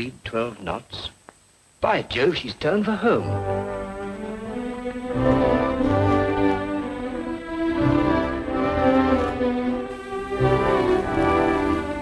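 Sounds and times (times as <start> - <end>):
violins holding sustained notes: 3.1 - 12.0
low cello notes: 3.2 - 12.0.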